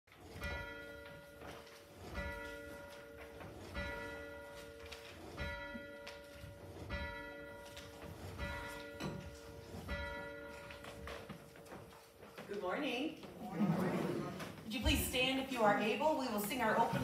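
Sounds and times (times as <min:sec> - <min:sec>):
church bell tolling: 0:00.2 - 0:11.3.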